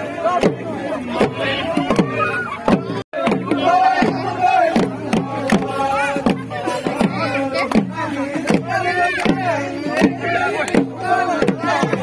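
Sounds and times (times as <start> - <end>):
men singing and calling: 0.0 - 12.0
drum beaten in steady rhythm: 0.3 - 12.0.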